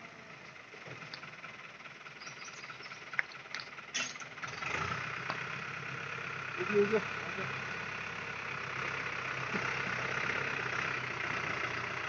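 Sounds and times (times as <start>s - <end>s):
tractor diesel engine: 0.0s - 12.0s.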